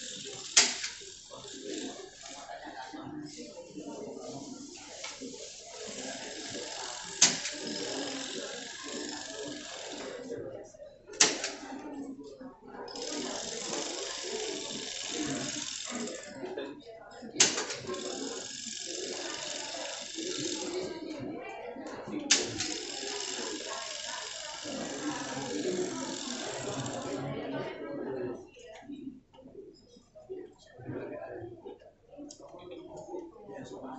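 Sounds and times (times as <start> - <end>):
people talking indistinctly: 0.0 - 33.9.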